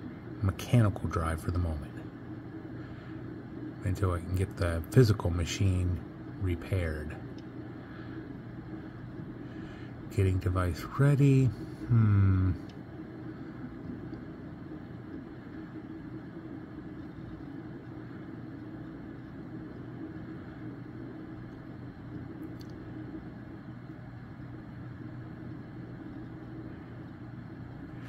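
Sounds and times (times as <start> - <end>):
machinery humming and hissing: 0.0 - 28.0
faint click: 22.1 - 22.8.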